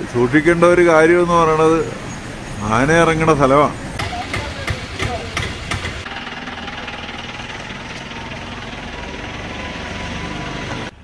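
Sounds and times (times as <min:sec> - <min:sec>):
vehicle engine idling with knocking: 0:04.0 - 0:10.9.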